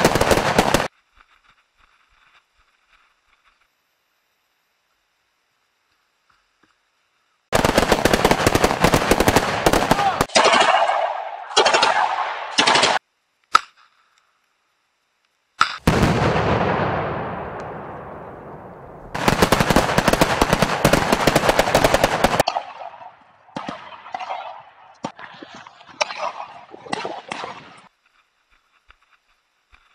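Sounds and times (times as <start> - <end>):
automatic gunfire: 0.0 - 0.9, 7.5 - 13.0, 19.1 - 22.5
loud blast: 15.8 - 20.8.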